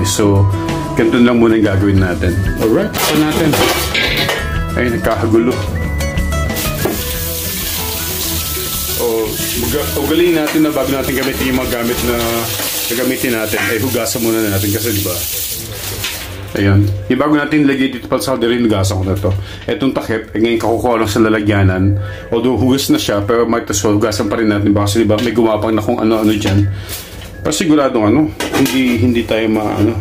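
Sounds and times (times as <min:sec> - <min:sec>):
metal pot lid clanking: 0:03.0 - 0:04.4
steady hiss: 0:06.6 - 0:16.4
person speaking: 0:07.2 - 0:20.0.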